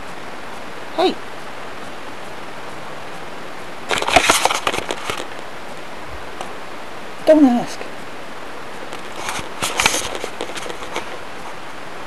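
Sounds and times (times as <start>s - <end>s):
microphone hiss: 0.0s - 12.0s
camera handling noise: 3.9s - 5.4s, 9.0s - 11.2s.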